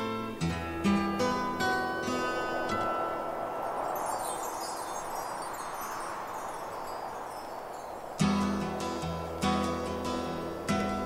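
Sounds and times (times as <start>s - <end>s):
gentle hiss: 0.0s - 11.0s
tinkling chimes: 1.0s - 9.4s.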